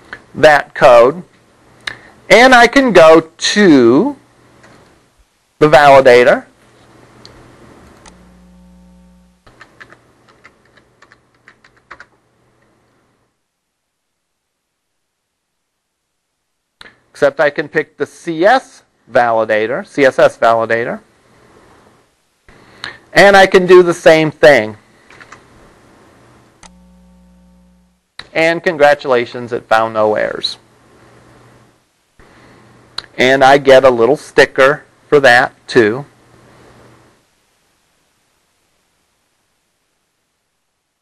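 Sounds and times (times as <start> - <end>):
faint electrical hum: 0.0 - 41.0
low steady hum: 5.5 - 10.4, 25.7 - 28.2
typing on computer keyboard: 9.5 - 12.2.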